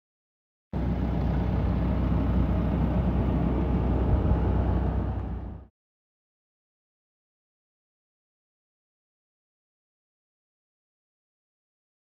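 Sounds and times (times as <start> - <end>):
loud low rumble: 0.8 - 5.7.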